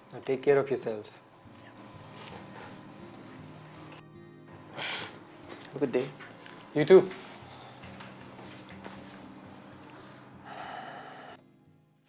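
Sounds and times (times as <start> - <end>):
low background music drone: 0.0 - 11.8
breathy rush: 9.5 - 11.4.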